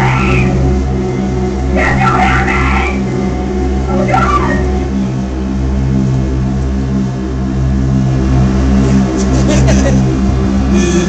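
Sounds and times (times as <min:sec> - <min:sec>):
pulsing low synthesizer drone: 0:00.0 - 0:11.0.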